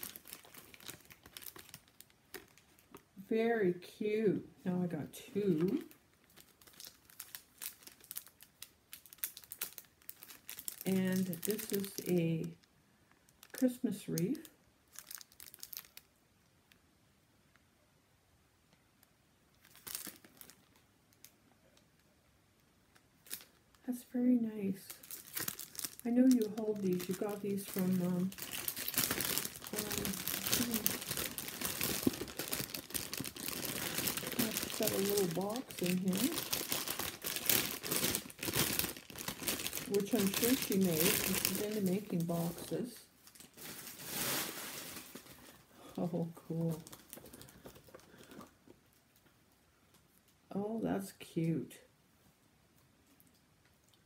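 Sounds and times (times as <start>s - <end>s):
cellophane crinkling: 0.0s - 3.2s, 5.3s - 16.2s, 19.5s - 22.0s, 22.9s - 49.4s.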